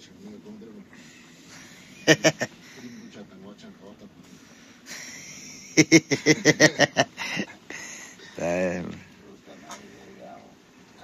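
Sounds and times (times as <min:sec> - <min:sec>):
low murmured talk: 0:00.0 - 0:05.4, 0:06.5 - 0:11.0
laughter in rapid bursts: 0:02.0 - 0:02.6, 0:04.9 - 0:07.6.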